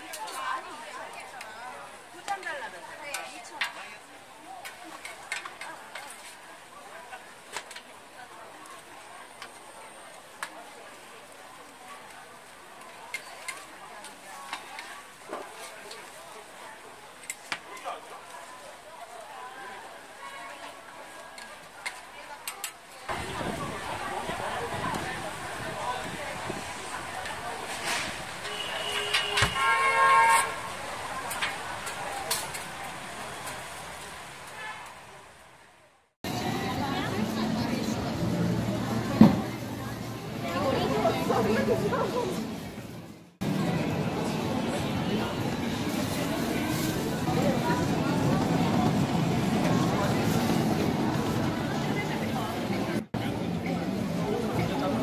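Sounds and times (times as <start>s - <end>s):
busy street market: 0.0s - 55.0s.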